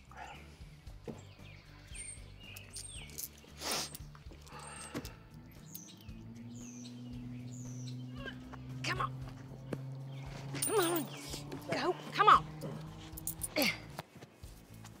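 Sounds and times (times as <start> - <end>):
small birds chirping: 0.0 - 14.9
low held soundtrack music tone: 0.0 - 15.0.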